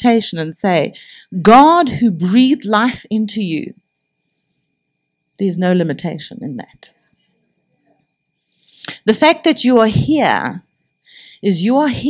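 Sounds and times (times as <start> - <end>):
woman talking: 0.0 - 3.7, 5.4 - 6.9, 8.8 - 10.6, 11.3 - 12.0
woman breathing in: 11.0 - 11.4.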